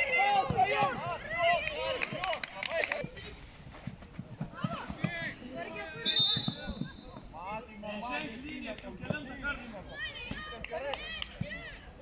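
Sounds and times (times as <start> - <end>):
players shouting: 0.0 - 3.0
referee's whistle blast: 6.0 - 6.8.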